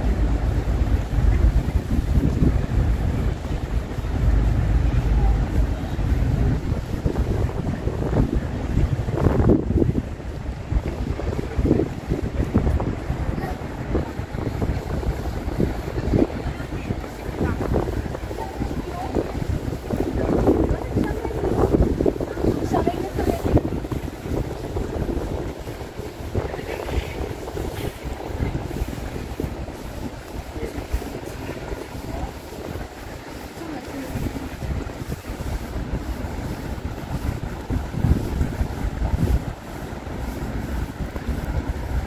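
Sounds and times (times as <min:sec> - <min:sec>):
gusty wind on microphone: 0:00.0 - 0:42.0
people talking: 0:00.0 - 0:42.0.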